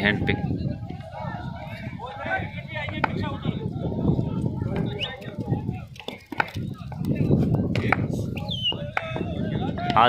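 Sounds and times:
murmur and calls of voices: 0:00.0 - 0:10.0.

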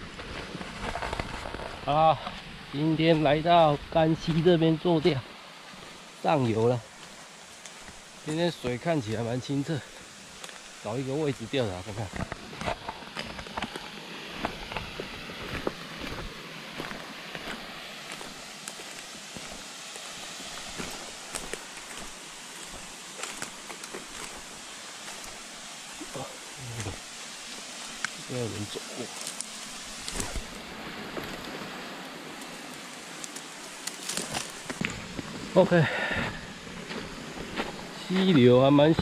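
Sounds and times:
flowing stream water: 0:00.0 - 0:39.0
footsteps crunching through dry leaves: 0:00.0 - 0:39.0
twigs snapping: 0:06.9 - 0:08.1, 0:10.4 - 0:10.8, 0:20.7 - 0:26.1, 0:29.1 - 0:31.6, 0:32.3 - 0:35.4.

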